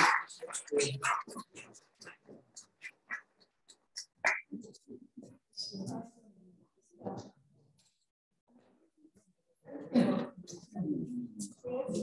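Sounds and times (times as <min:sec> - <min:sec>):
faint murmur of voices: 0:00.0 - 0:03.3, 0:08.5 - 0:12.0.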